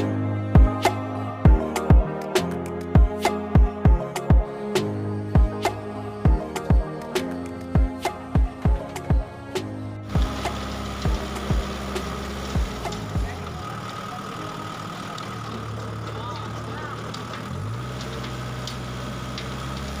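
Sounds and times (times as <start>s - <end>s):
tractor engine running: 10.0s - 20.0s
rotary tiller churning compost: 10.1s - 20.0s.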